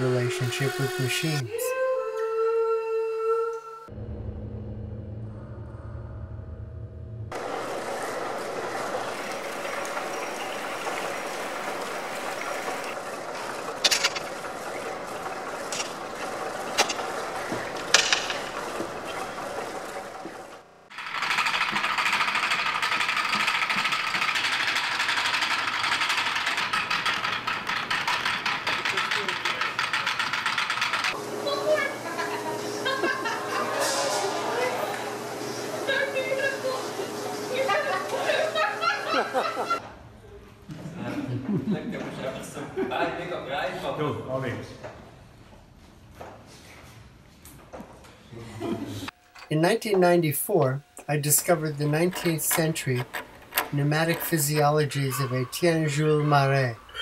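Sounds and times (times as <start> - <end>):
wooden gears clattering: 7.4 - 31.2, 51.3 - 55.7.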